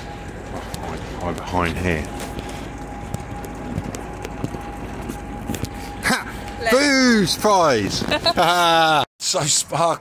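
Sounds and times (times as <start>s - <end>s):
footsteps on brick paving: 0.2s - 6.6s.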